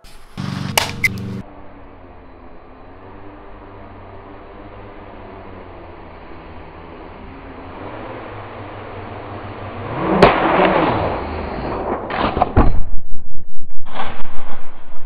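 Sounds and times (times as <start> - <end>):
drone motors buzzing: 0.0 - 9.5.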